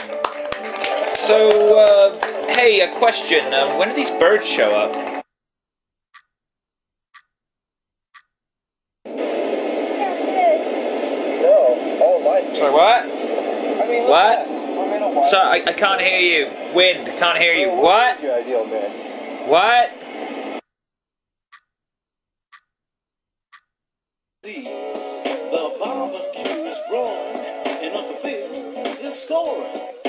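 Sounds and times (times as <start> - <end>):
clock tick: 6.1 - 6.3, 7.1 - 7.4, 8.1 - 8.4, 21.5 - 21.7, 22.5 - 22.7, 23.5 - 23.7
heavy wind noise: 9.1 - 20.6
rush of noise: 9.1 - 20.6.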